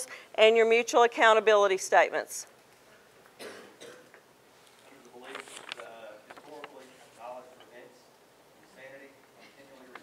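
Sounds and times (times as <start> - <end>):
faint cough: 3.4 - 4.2.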